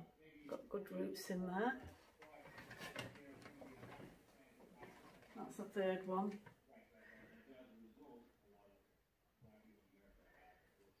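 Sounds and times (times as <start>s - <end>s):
plastic plant pots knocking: 1.8s - 5.5s.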